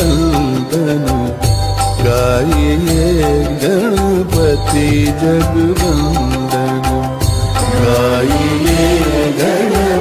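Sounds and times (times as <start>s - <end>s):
devotional song with bass: 0.0s - 10.0s.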